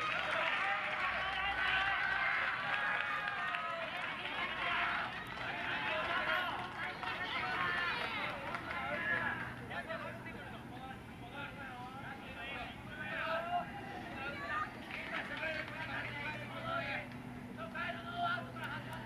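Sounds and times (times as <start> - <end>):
crowd shouting: 0.0 - 9.5, 12.4 - 17.0.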